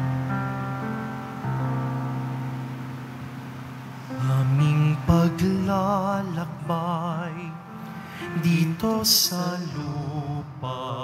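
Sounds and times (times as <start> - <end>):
held keyboard chord: 0.0 - 11.0.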